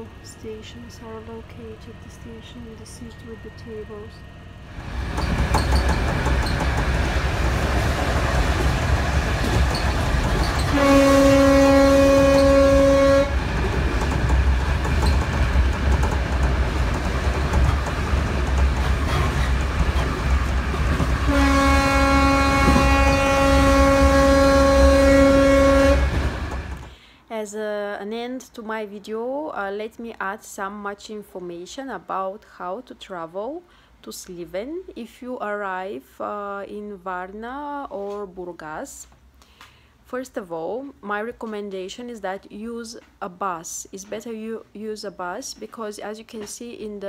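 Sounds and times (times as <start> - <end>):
train rumble: 0.0 - 27.0
train horn blasts: 10.6 - 13.4, 21.2 - 26.4.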